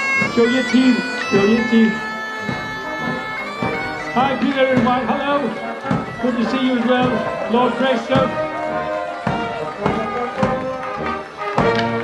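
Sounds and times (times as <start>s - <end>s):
marching brass band playing: 0.0s - 12.0s.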